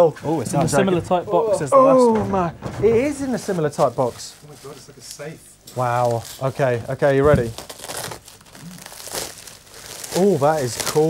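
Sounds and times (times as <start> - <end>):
bubble wrap crinkling: 3.0 - 11.0.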